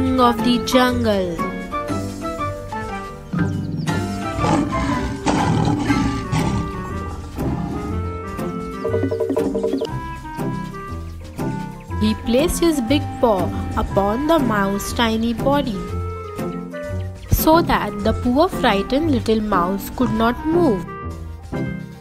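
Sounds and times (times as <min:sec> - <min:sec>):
cartoon background music: 0:00.0 - 0:22.0
lion roar: 0:03.9 - 0:08.1.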